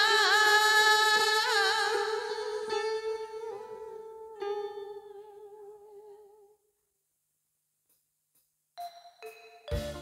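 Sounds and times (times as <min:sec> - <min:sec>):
karaoke backing track: 0:00.0 - 0:06.3, 0:08.8 - 0:10.0.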